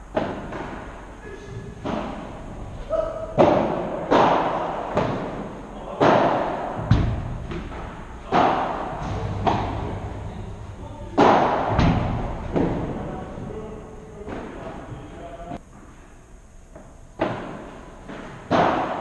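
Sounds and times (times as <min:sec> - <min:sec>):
padel ball hits echoing: 0:01.8 - 0:13.2.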